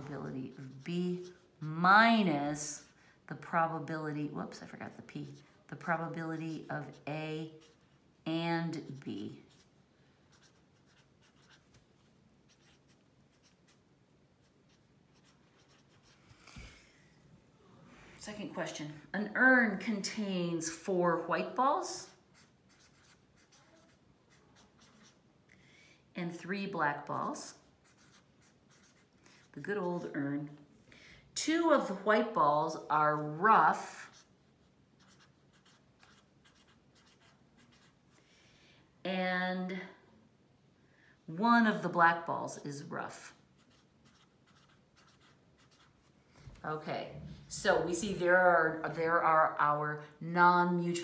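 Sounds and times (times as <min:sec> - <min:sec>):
pen scratching on paper: 0:00.1 - 0:01.7, 0:06.0 - 0:08.0, 0:08.8 - 0:09.7, 0:10.3 - 0:11.7, 0:12.4 - 0:13.8, 0:14.4 - 0:16.2, 0:22.3 - 0:25.2, 0:27.5 - 0:30.2, 0:33.8 - 0:34.4, 0:35.0 - 0:38.0, 0:43.6 - 0:46.0.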